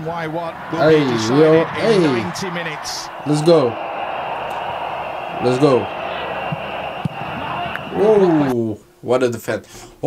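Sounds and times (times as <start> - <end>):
stadium crowd roaring: 0.0 - 8.6.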